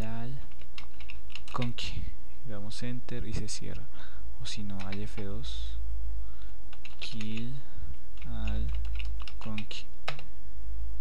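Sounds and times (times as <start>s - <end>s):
keyboard typing: 0.0s - 1.8s, 4.6s - 5.4s, 6.7s - 7.5s, 8.2s - 10.3s
steady low hum: 0.0s - 11.0s.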